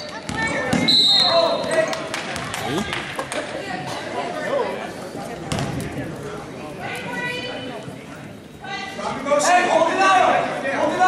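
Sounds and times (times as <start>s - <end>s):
basketball bouncing on court: 0.2s - 0.9s, 2.2s - 2.7s, 5.5s - 5.9s
chatter of voices: 1.4s - 11.0s.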